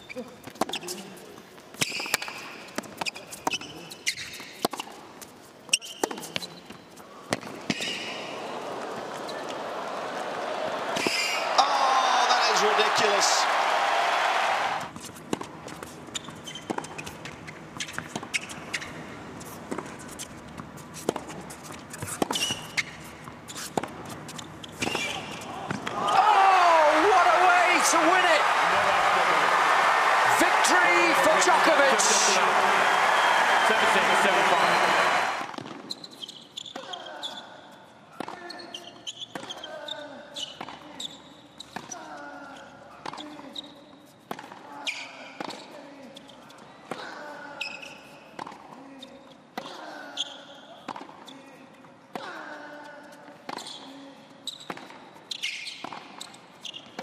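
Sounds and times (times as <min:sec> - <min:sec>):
shoes squeaking: 0:00.0 - 0:07.0, 0:14.8 - 0:37.4, 0:53.5 - 0:57.0
crowd cheering and applause: 0:08.2 - 0:14.9, 0:25.7 - 0:35.5.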